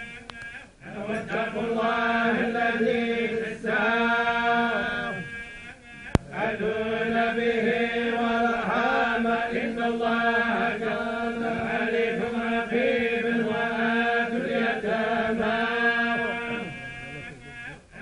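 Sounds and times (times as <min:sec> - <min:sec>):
men chanting together: 0:00.8 - 0:16.8.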